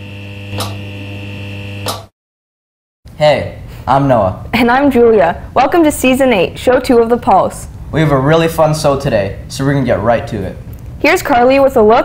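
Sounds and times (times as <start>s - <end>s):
short sharp hit: 0.0s - 0.9s
low electronic hum: 0.0s - 2.1s.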